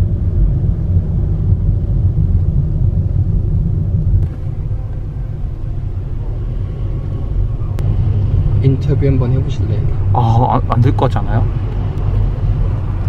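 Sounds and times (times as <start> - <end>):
car engine and tyre rumble: 0.0 - 13.0.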